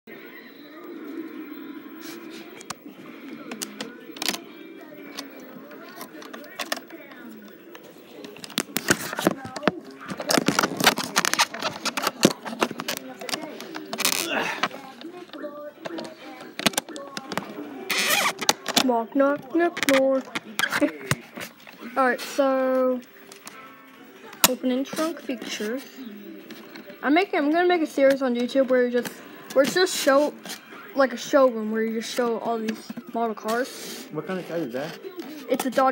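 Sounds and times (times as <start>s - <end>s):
low muffled voice: 0.1s - 23.0s.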